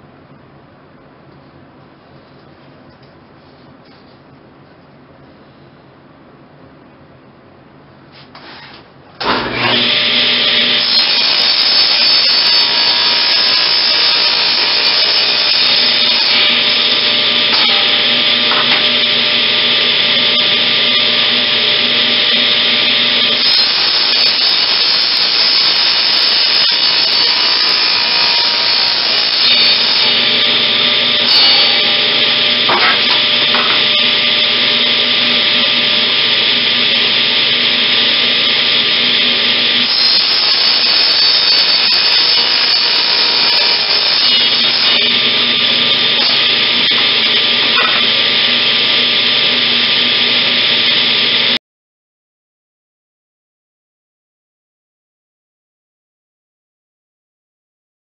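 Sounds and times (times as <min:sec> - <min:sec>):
table saw cutting wood: 0:08.4 - 0:51.6.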